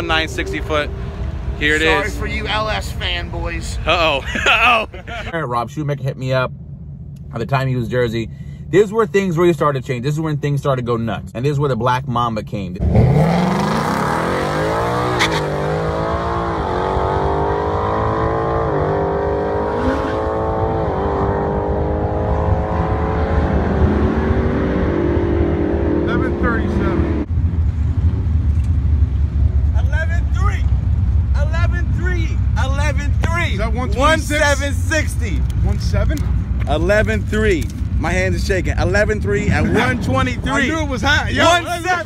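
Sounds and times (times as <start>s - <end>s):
voices: 0.0s - 6.5s, 29.7s - 30.7s, 31.3s - 42.0s
low rumble: 0.0s - 12.3s, 20.6s - 42.0s
car engine accelerating through gears: 12.8s - 27.3s.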